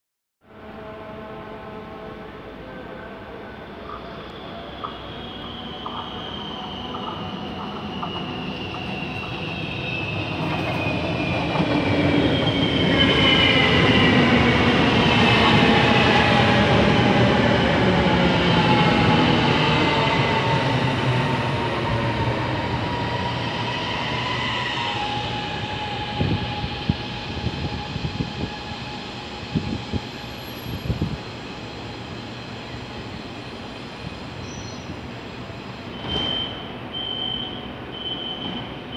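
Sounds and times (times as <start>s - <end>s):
train knocks: 35.9s - 36.8s, 38.0s - 38.9s
short high door beeps: 35.9s - 38.9s.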